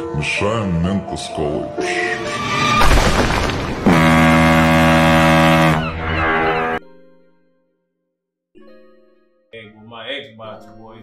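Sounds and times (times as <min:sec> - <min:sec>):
heavy boom crash: 0:02.5 - 0:04.8.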